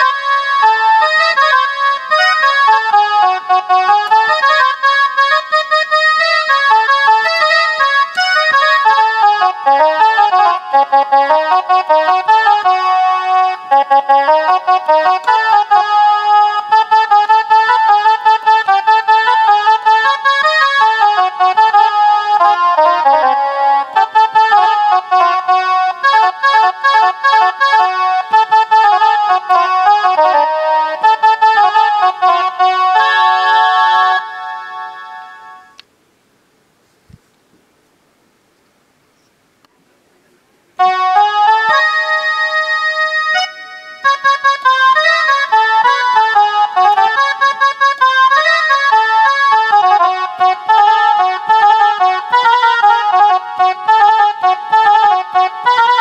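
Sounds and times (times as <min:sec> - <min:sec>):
electronic keyboard melody: 0:00.0 - 0:35.8, 0:40.8 - 0:56.0.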